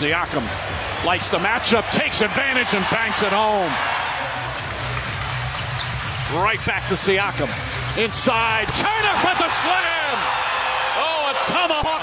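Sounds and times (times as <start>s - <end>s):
man commentating: 0.0s - 3.8s, 6.3s - 12.0s
arena crowd noise: 0.0s - 12.0s.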